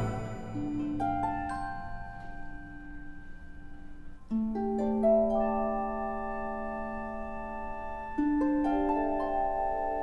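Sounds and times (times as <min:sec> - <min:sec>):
orchestral held note: 0:00.0 - 0:01.3.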